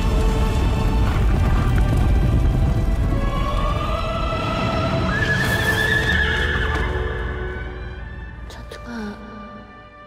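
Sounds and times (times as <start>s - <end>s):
hooves galloping on dirt: 0.0s - 5.0s
dramatic orchestral music: 0.0s - 10.0s.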